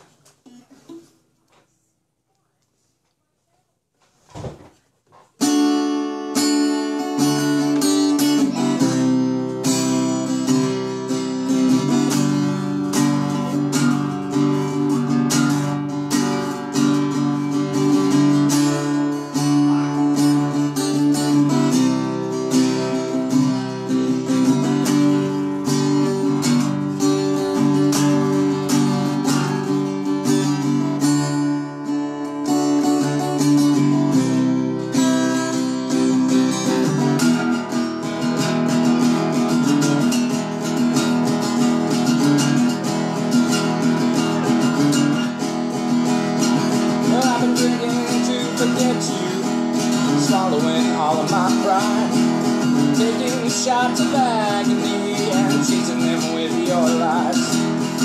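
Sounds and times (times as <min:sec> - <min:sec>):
acoustic guitar strumming: 0:05.4 - 0:58.0.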